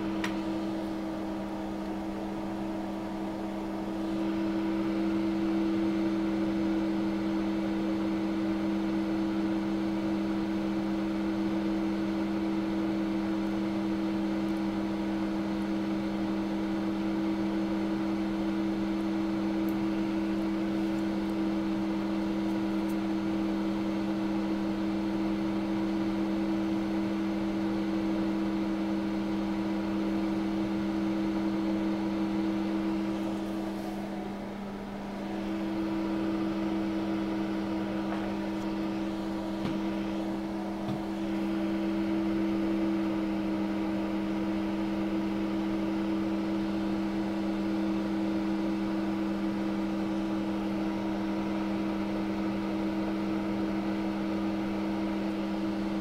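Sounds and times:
hot air blower fan hum: 0:00.0 - 0:56.0.

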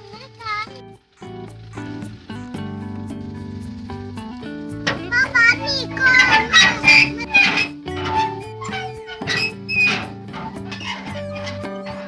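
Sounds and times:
girl talking in a high voice: 0:00.0 - 0:00.8, 0:05.0 - 0:07.5
background music with held notes: 0:00.0 - 0:12.0.

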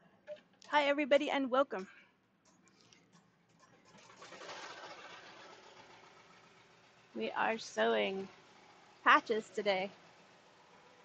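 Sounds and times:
embroidery machine running: 0:03.9 - 0:11.0.

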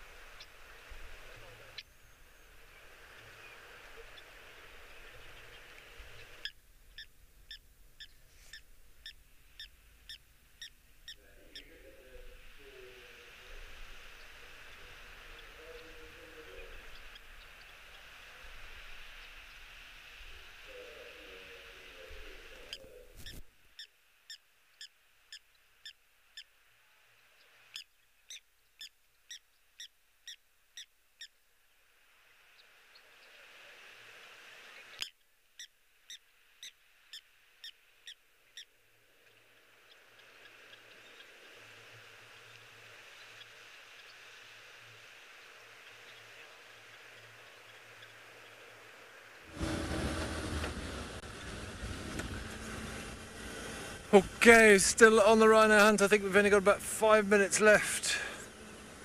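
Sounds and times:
wind rumble: 0:49.5 - 0:57.0.

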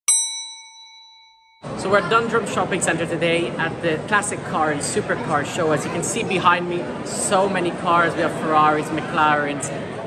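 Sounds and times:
bell-like ding: 0:00.1 - 0:01.8
crowd noise in hall: 0:01.6 - 0:10.0.

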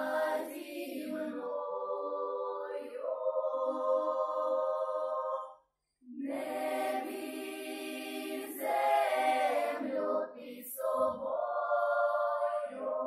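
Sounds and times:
children's choir singing a cappella: 0:00.0 - 0:13.0.

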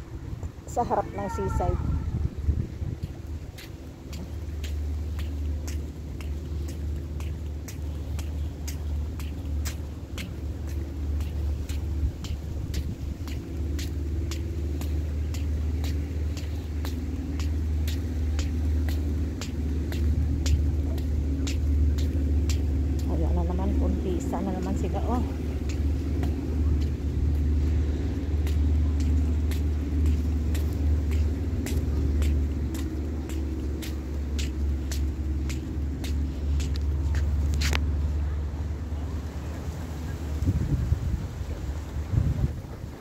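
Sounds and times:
wind buffeting microphone: 0:00.0 - 0:43.0
distant voice: 0:00.6 - 0:02.2
faint crackling clicks: 0:02.9 - 0:38.1.

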